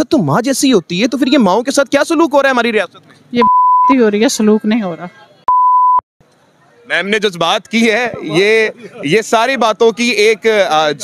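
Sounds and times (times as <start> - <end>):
censor bleeps: 3.4 - 4.0, 5.5 - 6.0
woman speaking: 3.4 - 5.2.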